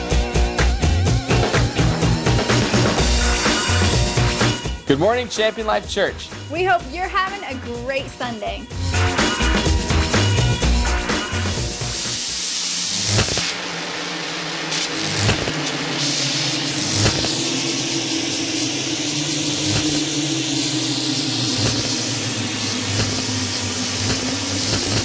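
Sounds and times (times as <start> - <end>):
low drone hum: 0.0 - 25.0
hiss: 10.2 - 25.0.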